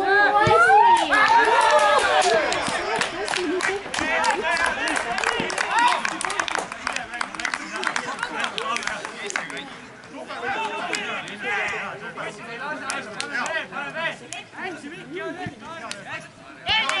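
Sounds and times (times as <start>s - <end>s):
men shouting and cheering: 0.0s - 9.4s, 10.1s - 14.2s, 16.6s - 17.0s
hand clapping: 1.0s - 9.6s, 12.8s - 13.6s.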